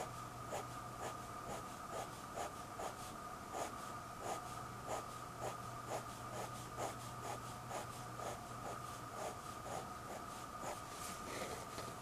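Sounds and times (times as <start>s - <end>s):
pen scratching on paper: 0.0s - 10.9s
faint high hum: 0.0s - 12.0s.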